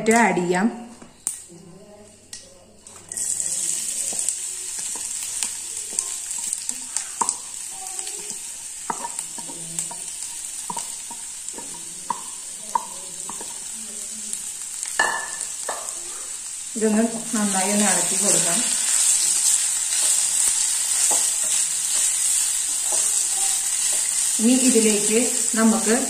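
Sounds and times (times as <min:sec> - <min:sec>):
potato sizzling in hot oil: 0:02.9 - 0:26.0.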